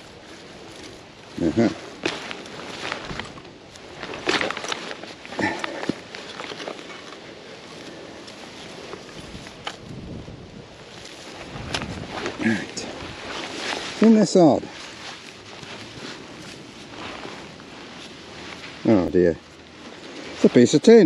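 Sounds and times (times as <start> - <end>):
turf rustling: 0.0 - 21.0.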